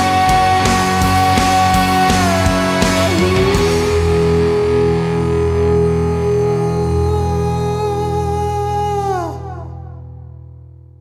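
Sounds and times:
sustained high guitar note: 0.0s - 10.5s
distorted electric guitar chord: 0.0s - 10.7s.

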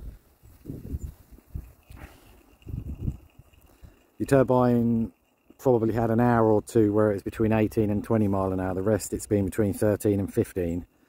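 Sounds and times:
wind buffeting microphone: 0.0s - 4.0s.

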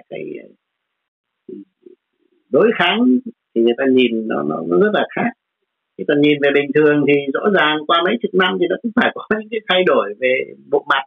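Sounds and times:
man speaking: 0.0s - 0.5s, 1.5s - 5.4s, 6.0s - 11.0s
man's hesitation sounds: 1.5s - 2.0s.

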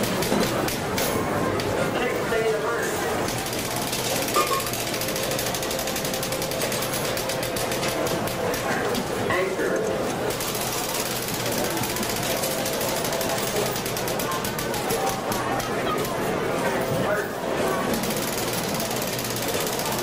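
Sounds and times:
fast continuous clicking: 0.0s - 1.8s, 3.0s - 20.0s
people talking: 0.0s - 20.0s.

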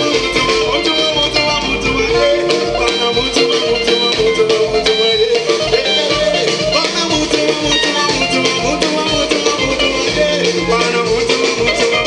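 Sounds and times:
guitar: 0.0s - 12.0s
live band playing dance music: 0.0s - 12.0s
steady drum beat: 0.0s - 12.0s.

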